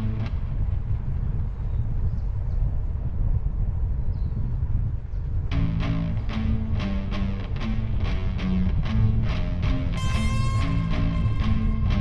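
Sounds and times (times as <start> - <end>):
wind buffeting microphone: 0.0 - 12.0
music track: 5.6 - 12.0.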